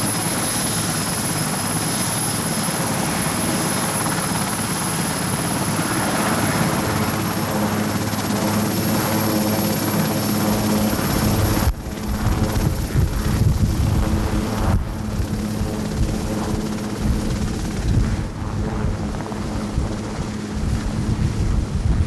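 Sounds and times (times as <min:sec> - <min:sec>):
helicopter rotor and turbine whine: 0:00.0 - 0:22.0
gusty low rumble: 0:11.2 - 0:22.0.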